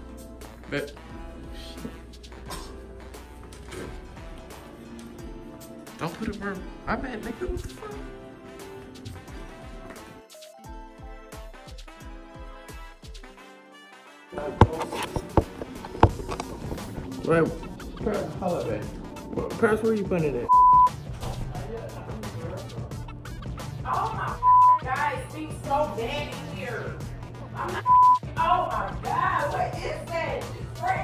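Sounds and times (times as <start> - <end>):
music: 0.0 - 31.0
phone microphone handling noise: 14.6 - 16.9
censor bleep: 20.5 - 21.0, 24.4 - 24.9, 27.9 - 28.2.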